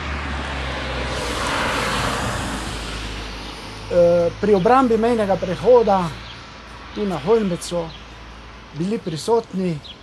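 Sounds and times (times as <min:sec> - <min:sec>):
car passing by: 0:00.0 - 0:08.7.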